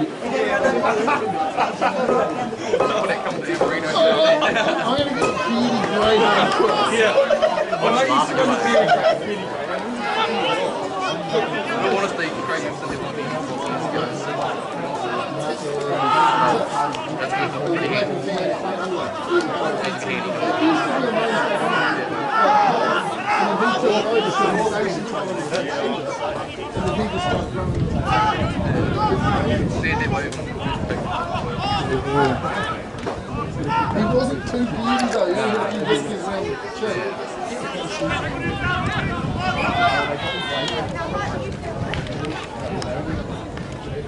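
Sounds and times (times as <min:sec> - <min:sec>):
indistinct chatter of voices: 0:00.0 - 0:44.0.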